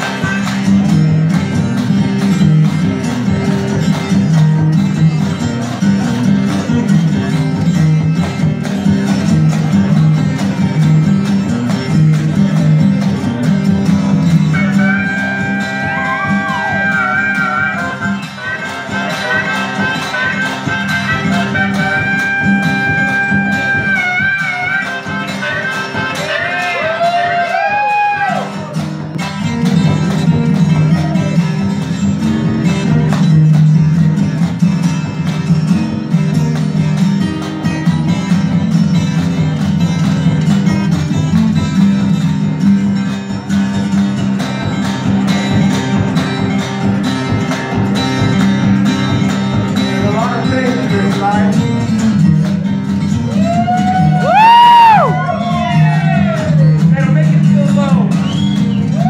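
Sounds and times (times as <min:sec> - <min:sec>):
harmonica bending notes: 0:00.0 - 0:28.3
acoustic guitar strumming chords: 0:00.0 - 0:59.0.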